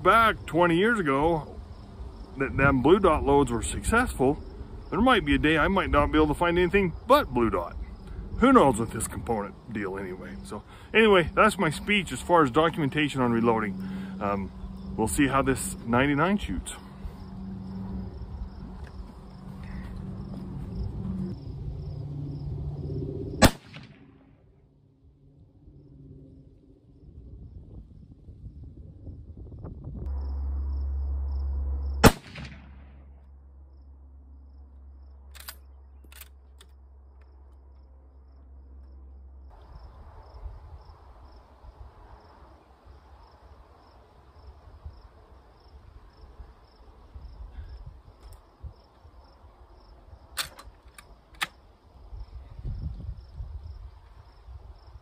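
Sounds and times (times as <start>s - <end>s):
rifle shots with echo: 23.4s - 24.0s, 32.0s - 32.8s.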